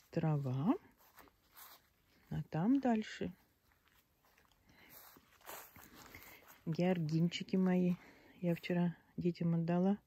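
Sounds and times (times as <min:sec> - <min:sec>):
footsteps rustling in grass: 0:00.0 - 0:08.8.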